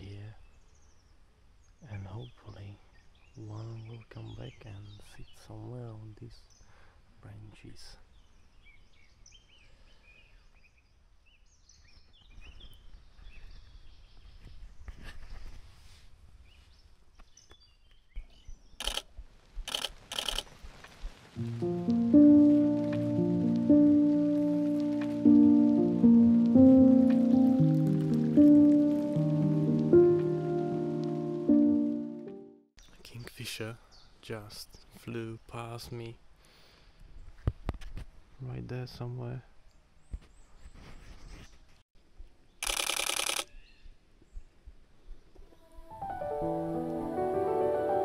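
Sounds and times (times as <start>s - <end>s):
faint birdsong: 0.0s - 19.1s, 32.8s - 37.5s, 42.4s - 45.8s
sharp clicks: 18.8s - 19.1s, 19.7s - 20.5s, 42.6s - 43.5s
music of slow sustained chords: 21.4s - 32.6s, 45.6s - 48.0s.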